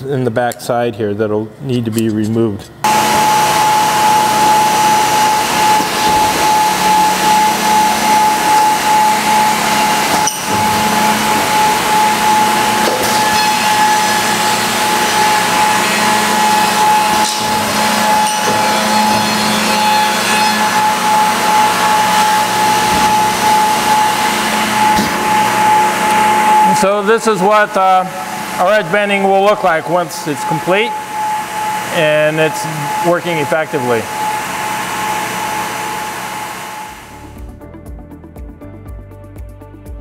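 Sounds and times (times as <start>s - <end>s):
machine drone with whine: 2.7s - 37.7s.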